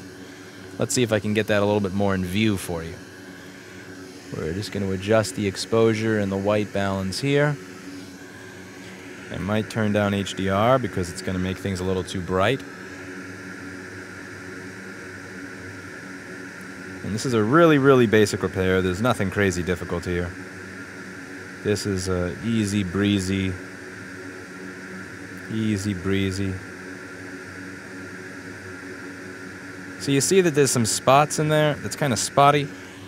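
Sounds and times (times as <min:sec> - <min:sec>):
faint low hum: 0:00.0 - 0:33.0
fan whooshing air: 0:00.0 - 0:33.0.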